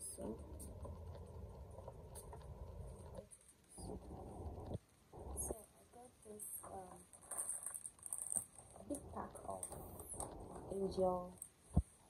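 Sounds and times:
plastic packet crinkling: 0:07.2 - 0:10.6.

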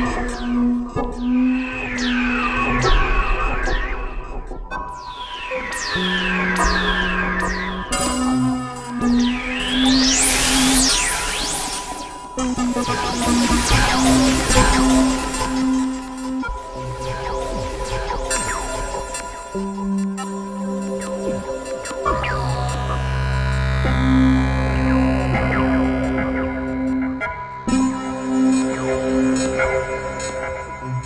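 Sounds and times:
synthesizer noise sweeps: 0:09.2 - 0:19.8, 0:21.8 - 0:29.1
low synthesizer drone: 0:21.8 - 0:29.2.

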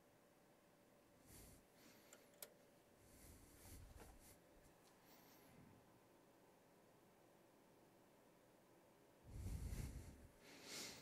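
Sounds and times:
faint steady hum: 0:00.0 - 0:11.0
handling rustles: 0:03.6 - 0:05.5.

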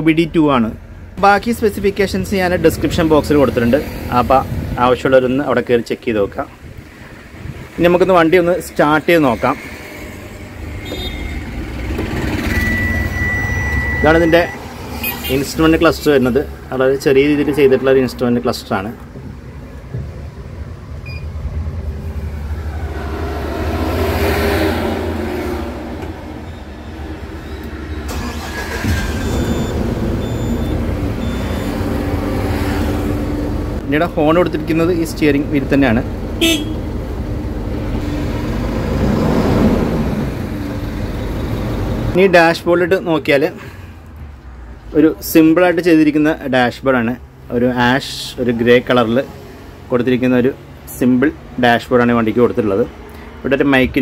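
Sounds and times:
diesel engine starting up: 0:11.5 - 0:14.6, 0:25.0 - 0:32.2
high-pitched warning tone: 0:12.4 - 0:15.4.

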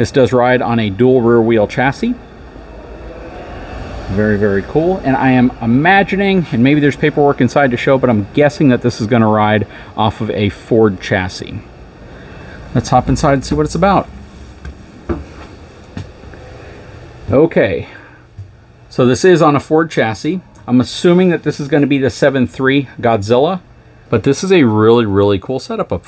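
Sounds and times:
low rumble of hall background noise: 0:00.0 - 0:26.0
low steady hum: 0:00.0 - 0:26.0
soft footsteps on floor: 0:14.3 - 0:16.4.

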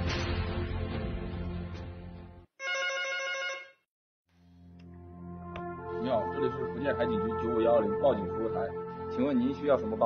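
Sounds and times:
telephone ringing: 0:02.6 - 0:03.8
soft music: 0:04.4 - 0:10.0.

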